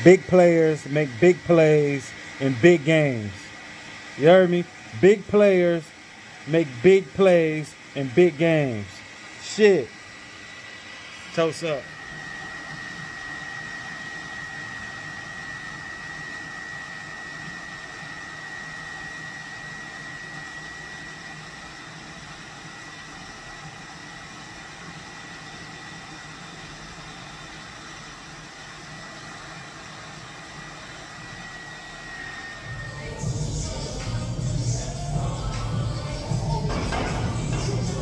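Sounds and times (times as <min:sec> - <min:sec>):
hair dryer running: 0:00.0 - 0:38.0.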